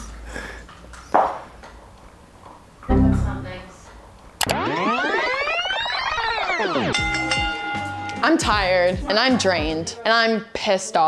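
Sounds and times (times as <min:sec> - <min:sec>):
electronic tones sweeping up and down: 0:02.9 - 0:03.6, 0:04.4 - 0:07.4.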